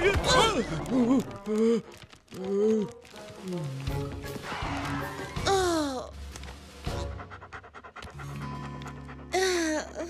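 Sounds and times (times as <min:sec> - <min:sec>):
background music: 0:00.0 - 0:10.0
cartoon puppy panting: 0:07.0 - 0:10.0.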